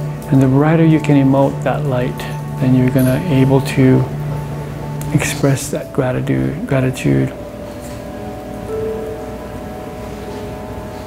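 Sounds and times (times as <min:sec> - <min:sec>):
ambient music with held tones: 0:00.0 - 0:11.0
steady rain-like hiss: 0:00.0 - 0:11.0.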